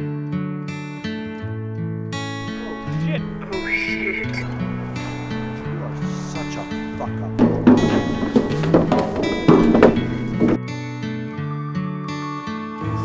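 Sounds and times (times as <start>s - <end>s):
acoustic guitar melody: 0.0s - 13.0s
background noise: 2.2s - 10.7s.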